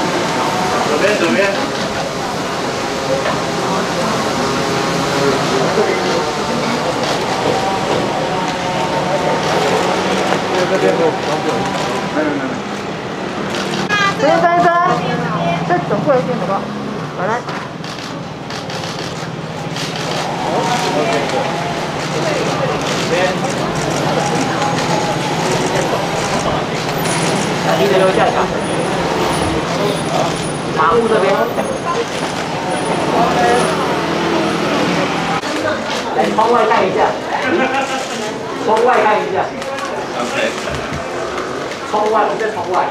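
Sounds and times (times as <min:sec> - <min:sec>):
people chattering: 0:00.0 - 0:42.9
street traffic drone: 0:00.0 - 0:42.9.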